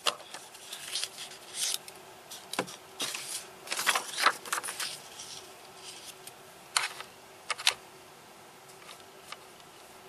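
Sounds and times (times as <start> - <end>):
paper rustling: 0.0 - 6.2
faint steady hum: 0.0 - 10.0.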